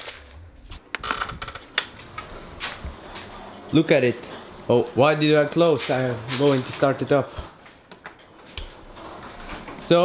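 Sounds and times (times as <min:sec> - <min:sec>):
low handling rumble: 0:00.1 - 0:06.8.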